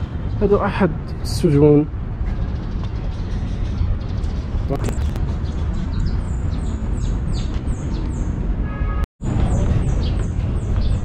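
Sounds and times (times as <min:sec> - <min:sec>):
bird chirping: 0:02.6 - 0:08.4
steady low rumble: 0:04.4 - 0:07.7.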